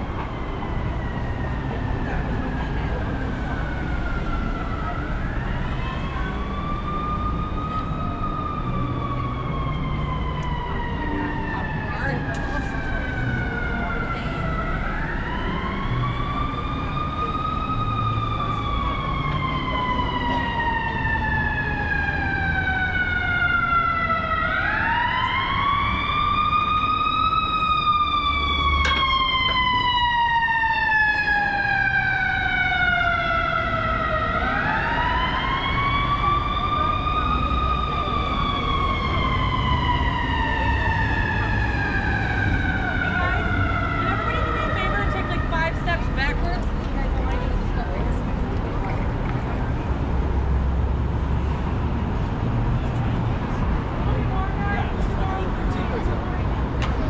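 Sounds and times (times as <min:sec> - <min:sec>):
city street traffic: 0:00.0 - 0:57.0
emergency siren wailing: 0:00.0 - 0:57.0.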